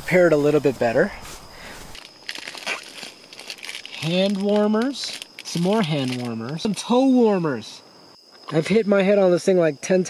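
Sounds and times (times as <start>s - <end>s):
packet crinkling: 1.9s - 6.7s.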